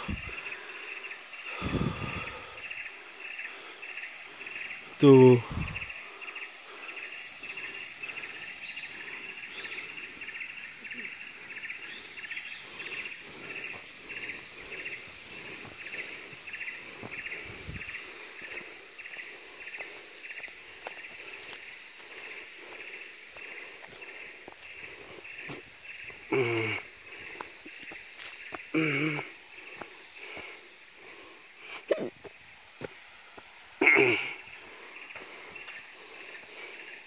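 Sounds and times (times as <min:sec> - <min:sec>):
pulsing insect chorus: 0:00.0 - 0:37.0
faint footsteps on dirt path: 0:03.4 - 0:37.0.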